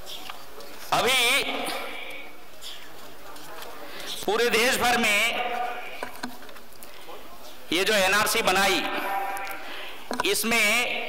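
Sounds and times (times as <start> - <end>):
man speaking into microphone: 0.9 - 2.3, 3.6 - 6.1, 7.0 - 11.0.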